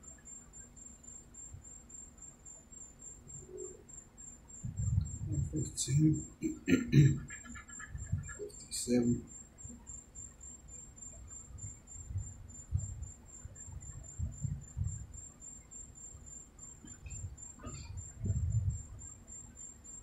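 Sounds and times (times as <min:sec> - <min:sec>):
faint high-pitched whine: 0:00.0 - 0:20.0.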